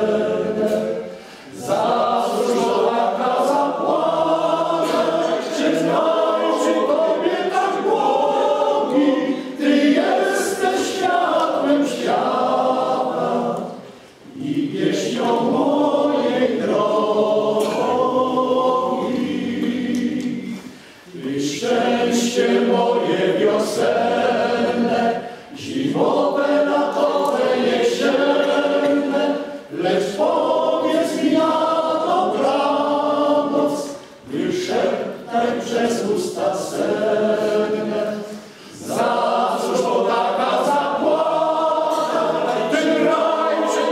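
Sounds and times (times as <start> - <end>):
male choir singing unaccompanied: 0.0 - 43.9.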